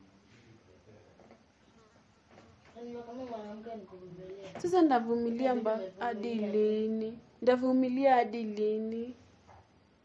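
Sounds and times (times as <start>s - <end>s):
faint low murmur: 0.0s - 10.0s
woman speaking: 3.9s - 9.2s.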